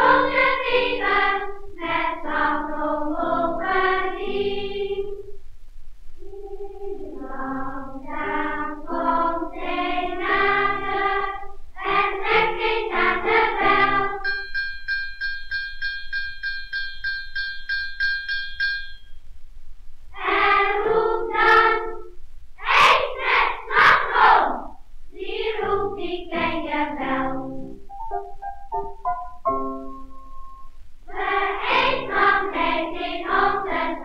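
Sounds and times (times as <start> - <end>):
children's choir singing: 0.0 - 5.3, 6.2 - 14.6, 20.2 - 27.9, 31.1 - 34.0
small bell ringing: 14.2 - 19.2.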